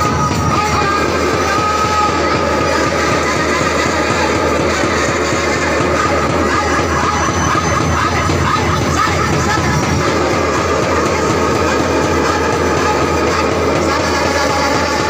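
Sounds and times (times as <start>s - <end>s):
many people praying aloud: 0.0s - 15.0s.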